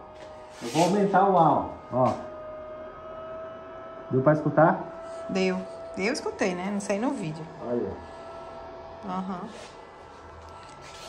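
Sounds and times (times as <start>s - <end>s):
air blower electric hum: 0.0s - 11.0s.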